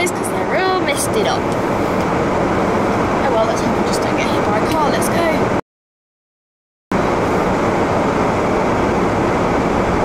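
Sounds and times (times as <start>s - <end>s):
car engine and road noise: 0.0s - 5.6s, 6.9s - 10.0s.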